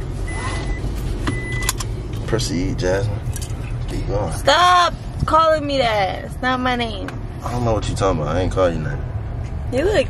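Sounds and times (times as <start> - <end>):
car electronic warning beep: 0.0 - 1.8
car engine and road rumble: 0.0 - 10.0.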